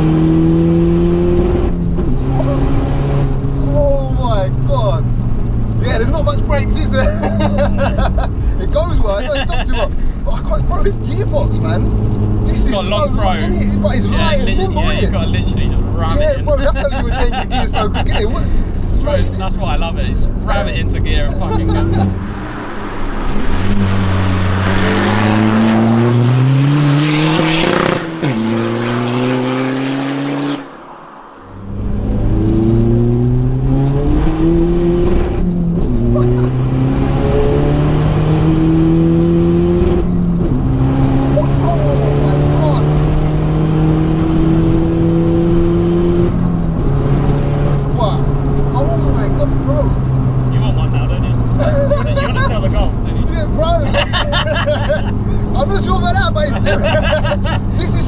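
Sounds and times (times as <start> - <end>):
diesel car engine accelerating: 0.0 - 58.0.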